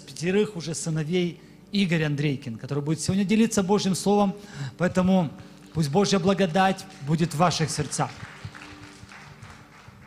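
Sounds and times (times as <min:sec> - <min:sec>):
faint footsteps on a stage: 0:08.0 - 0:10.0.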